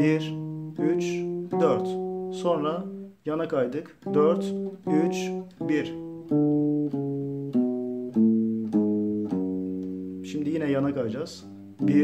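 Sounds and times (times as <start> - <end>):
nylon-string guitar notes plucked: 0.0 - 12.0.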